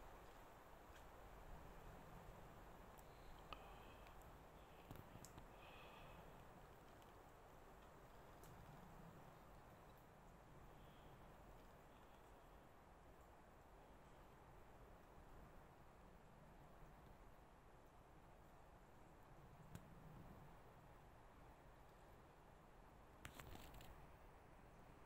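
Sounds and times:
small fire crackling: 0.0 - 24.2
faint steady hiss: 0.0 - 25.0.

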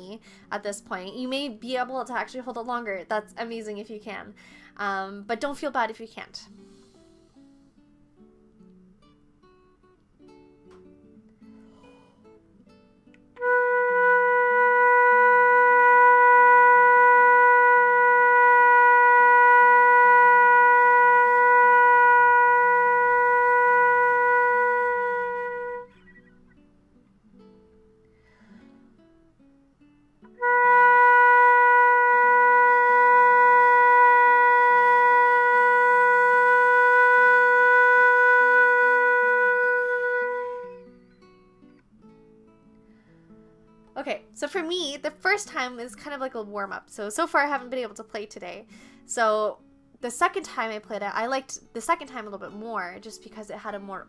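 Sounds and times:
faint acoustic guitar music: 0.0 - 54.0
flute playing long notes: 13.4 - 26.6, 30.4 - 41.0.

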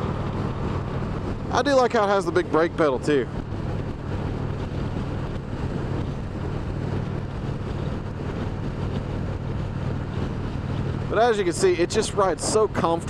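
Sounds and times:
motorcycle engine cruising: 0.0 - 13.0
wind rushing over microphone: 0.0 - 13.0.

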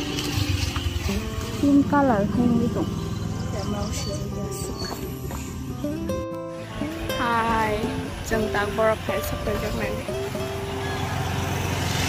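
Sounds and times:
background music: 0.0 - 12.0
woman talking: 1.6 - 2.9, 3.5 - 5.1, 7.2 - 10.1.

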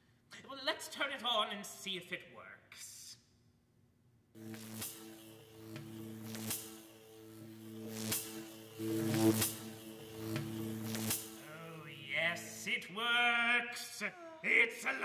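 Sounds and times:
low pitched hum: 4.4 - 12.7.

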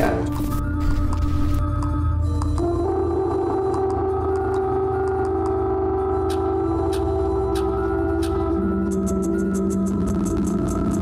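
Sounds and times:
electronic drone with low bass: 0.0 - 11.0.

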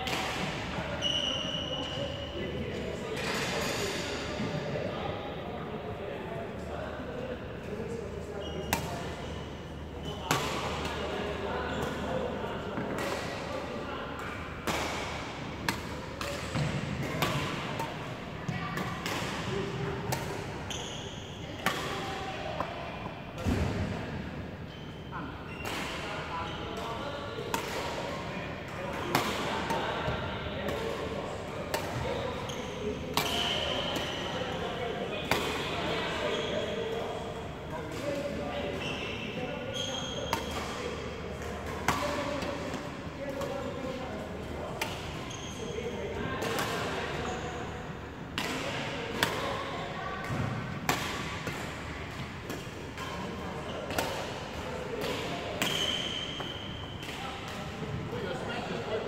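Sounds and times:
voices and court noise: 0.0 - 59.0.

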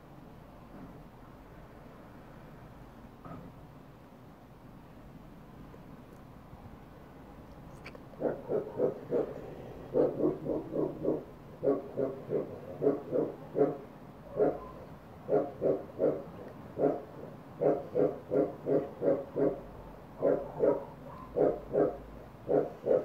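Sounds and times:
animal grunting calls: 8.2 - 14.6, 15.3 - 20.8, 21.4 - 23.0.

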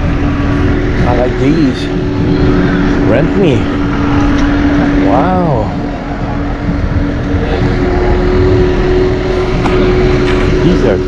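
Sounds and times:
faint steady hum: 0.0 - 11.0
loud rumbling with hiss: 0.0 - 11.0.

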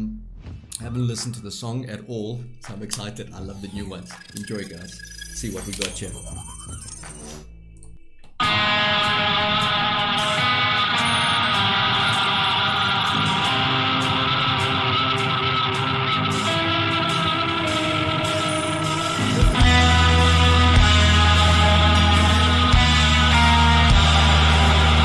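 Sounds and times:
hard rock guitar music: 8.4 - 25.0.

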